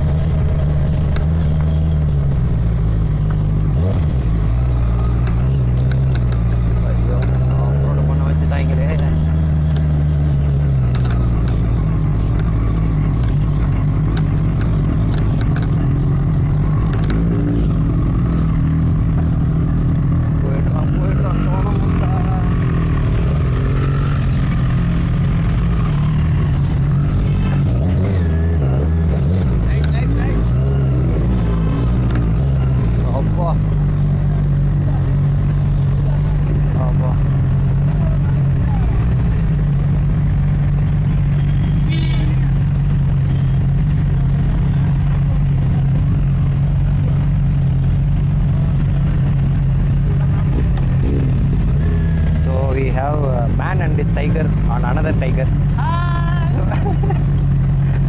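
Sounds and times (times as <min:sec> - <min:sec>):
motorcycle engine idling: 0:00.0 - 0:58.0
people talking: 0:06.8 - 0:09.3, 0:20.4 - 0:22.8, 0:29.6 - 0:30.6, 0:33.0 - 0:33.6, 0:35.9 - 0:37.3, 0:37.9 - 0:39.2, 0:52.4 - 0:57.1.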